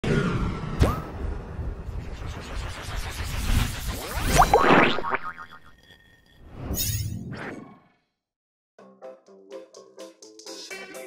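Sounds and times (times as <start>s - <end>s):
whoosh with springy pitch sweeps: 0.0s - 5.8s.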